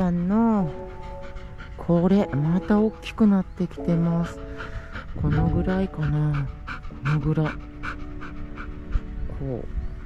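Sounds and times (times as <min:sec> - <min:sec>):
dog panting: 0:00.0 - 0:10.0
soft background music: 0:00.0 - 0:10.0.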